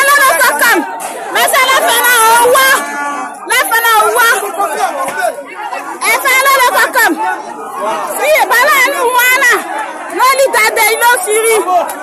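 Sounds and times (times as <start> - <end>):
crowd talking loudly: 0.0 - 12.0.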